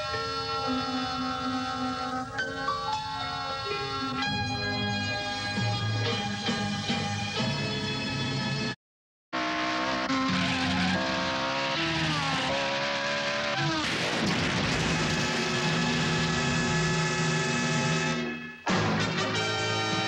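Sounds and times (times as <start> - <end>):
car engine revving through gears: 9.4 - 18.0
loud music: 15.6 - 20.0.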